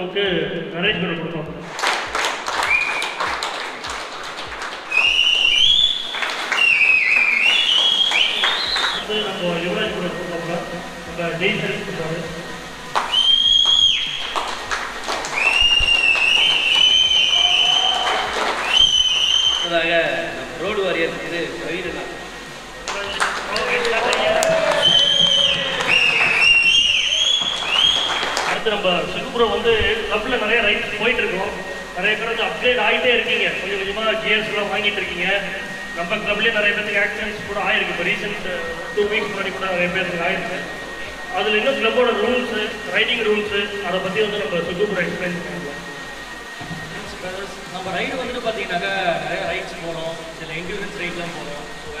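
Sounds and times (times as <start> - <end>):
small group clapping: 1.6 - 9.1, 12.9 - 19.7, 22.8 - 28.6
person whistling shrilly: 2.6 - 3.2, 4.9 - 9.1, 13.0 - 14.5, 15.4 - 19.8, 23.6 - 28.6.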